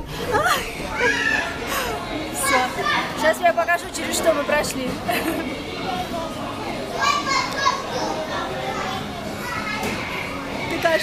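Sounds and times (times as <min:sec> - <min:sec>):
children playing and calling out: 0:00.0 - 0:03.5, 0:04.1 - 0:10.7.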